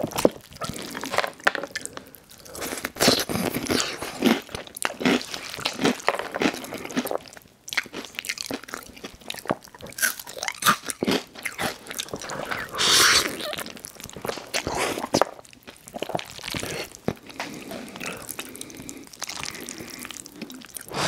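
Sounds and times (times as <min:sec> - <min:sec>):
crisp chewing crunches: 0:00.0 - 0:21.0
wet mouth sounds: 0:07.8 - 0:21.0.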